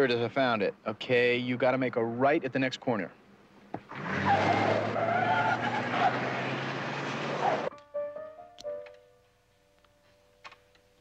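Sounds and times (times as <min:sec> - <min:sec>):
car tyres squealing: 0:03.8 - 0:07.7
held music notes: 0:07.7 - 0:11.0.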